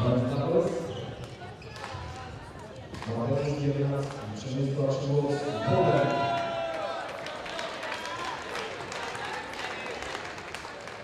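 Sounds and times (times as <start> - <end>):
man speaking in echoing hall: 0.0 - 1.0, 3.1 - 6.3.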